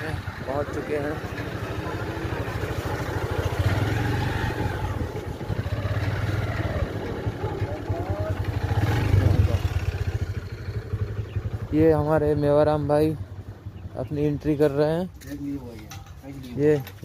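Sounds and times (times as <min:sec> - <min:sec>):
motorcycle engine putter: 0:15.1 - 0:17.0.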